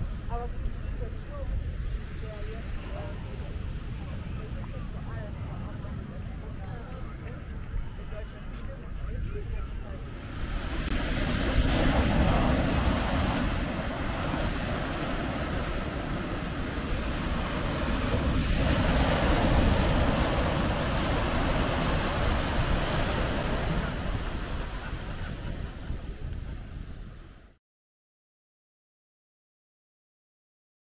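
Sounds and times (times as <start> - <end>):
wind rumbling on microphone: 0.0 - 27.6
sea waves breaking on beach: 10.0 - 27.4.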